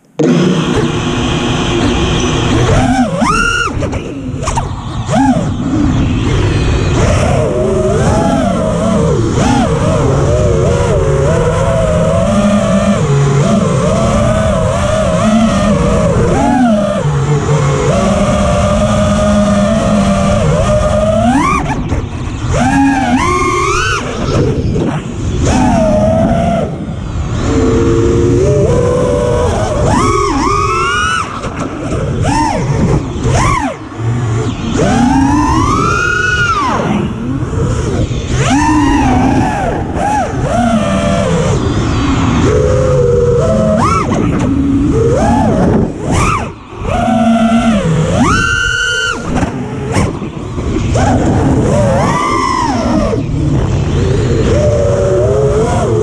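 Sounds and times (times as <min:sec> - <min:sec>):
drone motors whining: 0:00.0 - 0:56.0.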